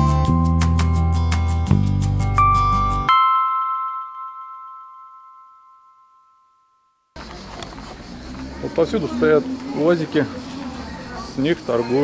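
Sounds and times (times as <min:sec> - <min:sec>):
background music: 0:00.0 - 0:05.0
street noise: 0:07.1 - 0:12.0.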